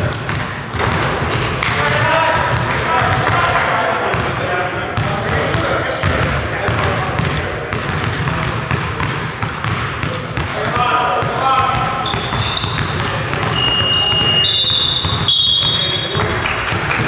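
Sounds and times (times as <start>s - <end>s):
indistinct voices talking: 1.8s - 17.0s
basketball bouncing on hardwood: 6.0s - 17.0s.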